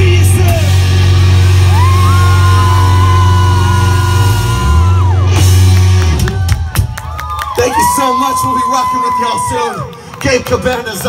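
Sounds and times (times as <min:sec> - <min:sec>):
live rock band playing: 0:00.0 - 0:07.1.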